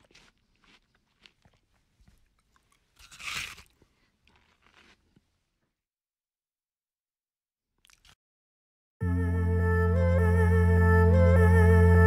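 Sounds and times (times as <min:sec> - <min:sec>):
dog crunching bite: 0:00.0 - 0:05.0.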